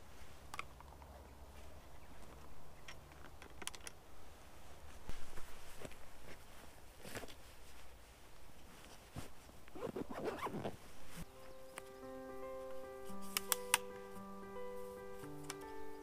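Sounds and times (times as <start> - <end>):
backpack zipper and rustling: 8.8 - 11.3
soft background music: 11.2 - 16.0
sharp clicks: 13.3 - 14.0.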